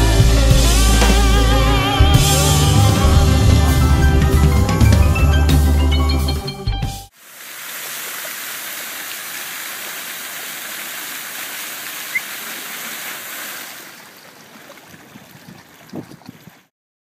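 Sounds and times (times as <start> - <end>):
fountain water splashing: 7.1 - 16.4.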